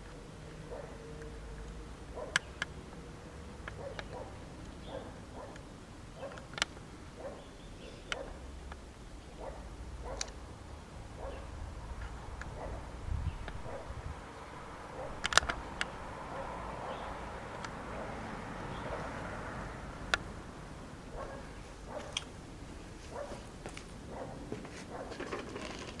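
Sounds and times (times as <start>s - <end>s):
sharp clicks: 6.3s - 6.9s, 15.2s - 16.0s.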